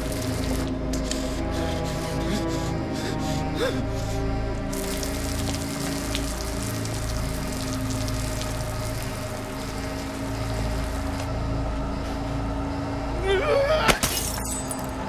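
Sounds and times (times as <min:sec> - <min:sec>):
low film score drone: 0:00.0 - 0:15.0
heavy rain: 0:04.7 - 0:11.2.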